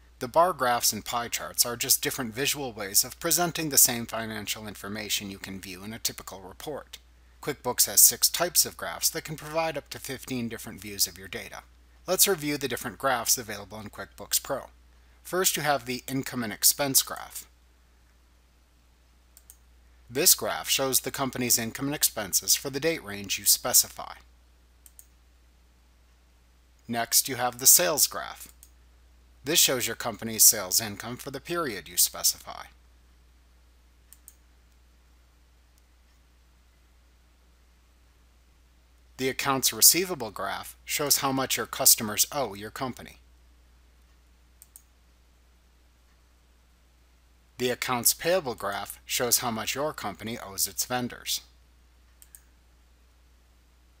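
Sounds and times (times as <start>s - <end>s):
computer mouse clicks: 19.4s - 19.6s, 24.8s - 25.2s, 28.4s - 28.8s, 34.1s - 34.8s, 44.0s - 44.9s, 52.1s - 52.5s.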